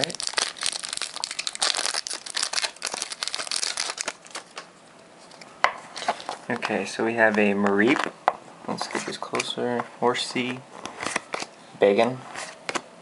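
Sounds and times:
foil wrapper crinkling and tearing: 0:00.0 - 0:04.7.

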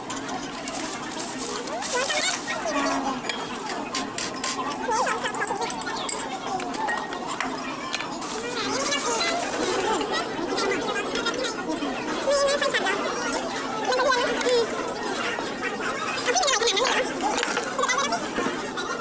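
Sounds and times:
chatter of many voices: 0:00.0 - 0:19.0.

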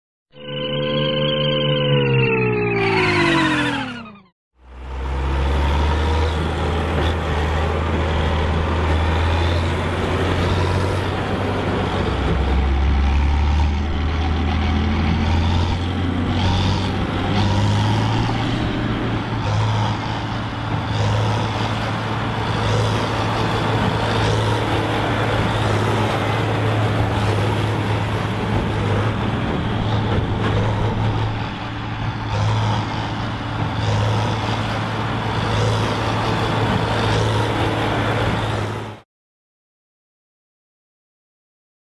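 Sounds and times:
tractor engine running: 0:04.6 - 0:39.0.

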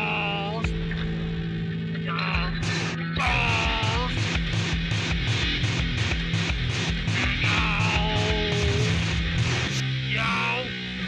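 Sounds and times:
lo-fi rock band playing: 0:00.0 - 0:11.0
person singing or yelling: 0:02.0 - 0:02.6, 0:03.2 - 0:04.2, 0:07.1 - 0:09.0, 0:10.1 - 0:10.7.

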